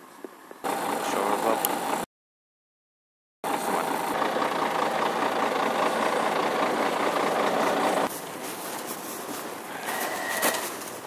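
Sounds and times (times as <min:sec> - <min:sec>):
faint outdoor background: 0:00.0 - 0:02.1, 0:03.4 - 0:11.0
lorry engine idling: 0:00.6 - 0:02.1, 0:03.4 - 0:08.2.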